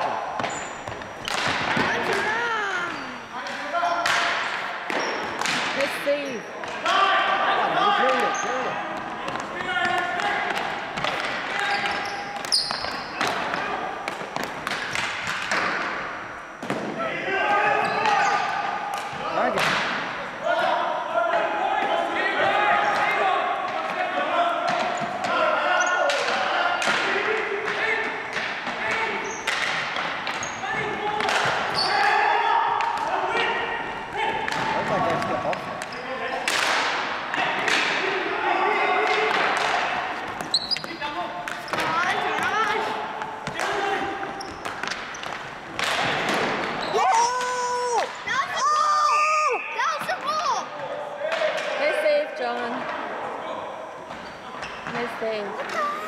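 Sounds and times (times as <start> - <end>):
players calling out: 0.0 - 52.1
sticks and ball clacking: 39.0 - 48.3.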